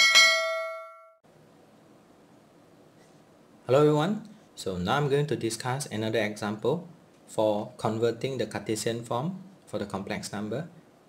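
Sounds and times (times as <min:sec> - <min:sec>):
notification bell chime: 0:00.0 - 0:01.2.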